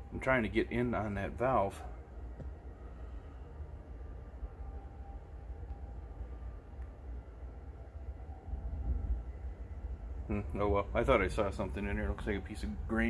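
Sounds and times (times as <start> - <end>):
low uneven background rumble: 0.0 - 13.0.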